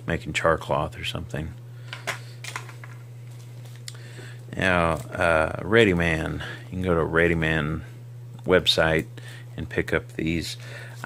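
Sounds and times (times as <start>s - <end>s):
low electrical hum: 0.0s - 11.0s
small items clicking and tapping: 1.9s - 3.0s.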